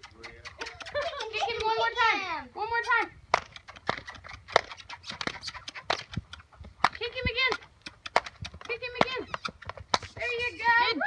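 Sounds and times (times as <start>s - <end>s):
pony hooves trotting: 0.0s - 11.0s
saddle tack clicking: 7.6s - 10.2s.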